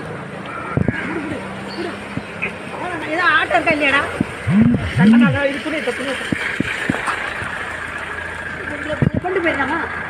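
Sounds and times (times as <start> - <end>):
outdoor noise: 0.0 - 10.0
vehicle engine idling: 0.0 - 10.0
person speaking: 4.5 - 5.4.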